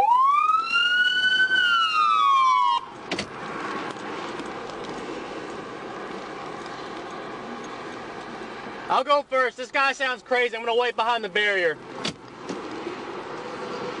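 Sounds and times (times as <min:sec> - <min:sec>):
police siren wailing: 0:00.0 - 0:03.0.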